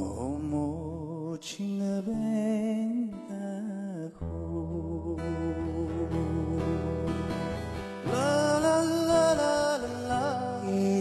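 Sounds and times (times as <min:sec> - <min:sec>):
acoustic guitar strummed: 0:00.0 - 0:11.0
men singing with vibrato: 0:08.0 - 0:11.0.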